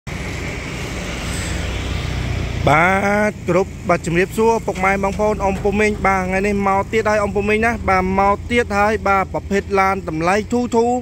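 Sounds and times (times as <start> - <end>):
car engine idling: 2.3 - 11.0
man talking: 2.6 - 11.0.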